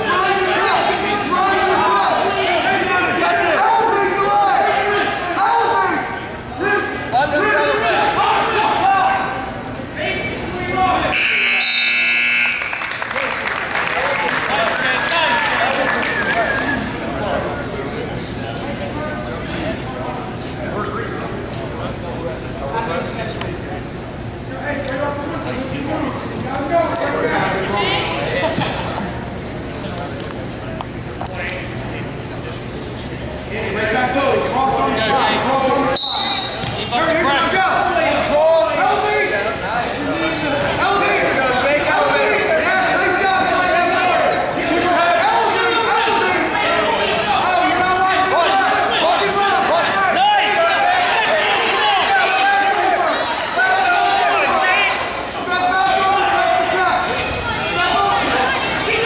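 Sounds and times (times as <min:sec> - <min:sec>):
spectators' voices: 0:00.0 - 0:59.0
referee's whistle blast: 0:11.1 - 0:12.8, 0:35.9 - 0:36.8
scoreboard buzzer: 0:11.1 - 0:12.9.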